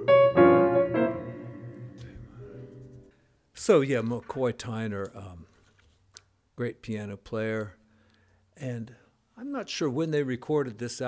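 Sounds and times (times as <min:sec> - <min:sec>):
piano chords ringing: 0:00.0 - 0:03.1.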